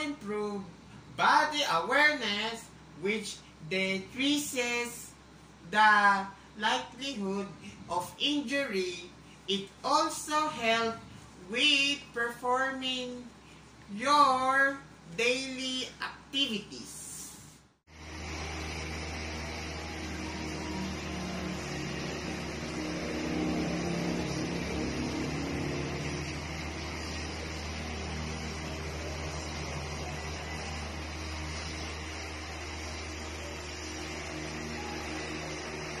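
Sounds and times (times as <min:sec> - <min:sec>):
low mechanical hum: 0:00.0 - 0:36.0.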